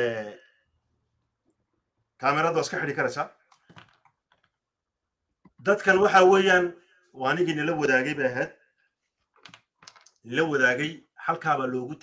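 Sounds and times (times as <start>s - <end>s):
man talking: 0.0s - 0.4s, 2.2s - 3.4s, 5.6s - 8.6s, 10.2s - 12.0s.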